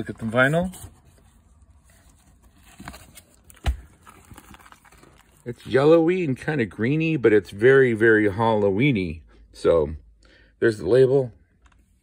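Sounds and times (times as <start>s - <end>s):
record sleeve rustling: 0.0s - 5.8s.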